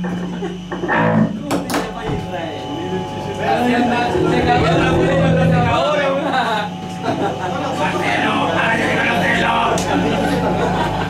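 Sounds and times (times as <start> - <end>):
voices in room: 0.0 - 11.0
electric guitar strumming: 3.8 - 6.0.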